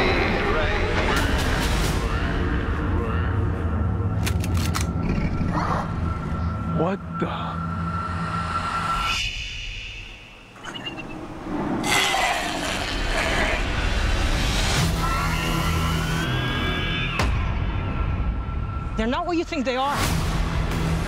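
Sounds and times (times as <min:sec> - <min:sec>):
film trailer music: 0:00.0 - 0:21.0.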